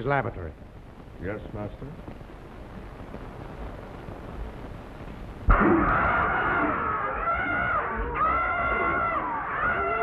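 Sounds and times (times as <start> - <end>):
film soundtrack hiss and rumble: 0.0 - 10.0.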